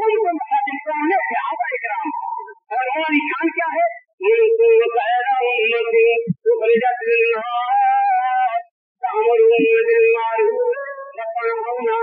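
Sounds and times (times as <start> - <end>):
man chanting melodically: 0.0 - 12.0.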